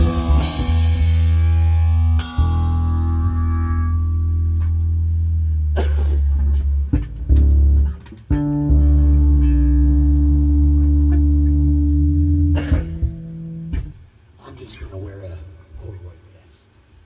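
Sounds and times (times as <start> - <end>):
live rock band playing: 0.0 - 5.1, 6.2 - 14.0.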